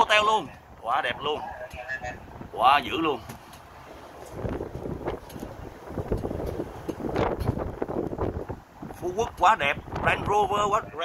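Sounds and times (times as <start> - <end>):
cart rumbling on paved road: 0.0 - 11.0
wind buffeting microphone: 0.0 - 11.0.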